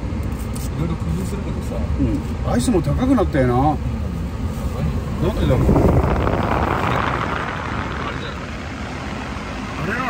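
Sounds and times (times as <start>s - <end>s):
car cabin rumble and hiss: 0.0s - 10.0s.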